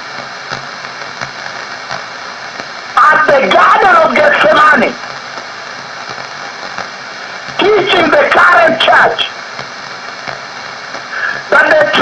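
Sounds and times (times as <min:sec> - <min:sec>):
radio hiss: 0:00.0 - 0:12.0.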